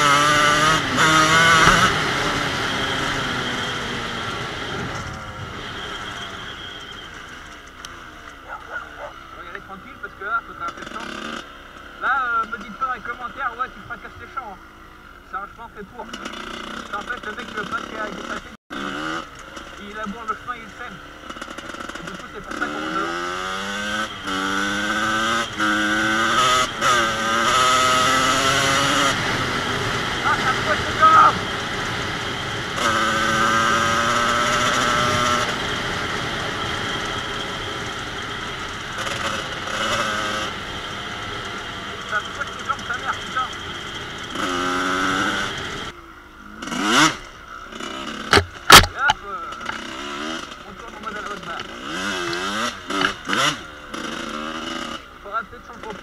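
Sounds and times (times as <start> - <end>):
motorcycle engine revving: 0.0 - 56.0
sharp knocks: 48.3 - 49.8.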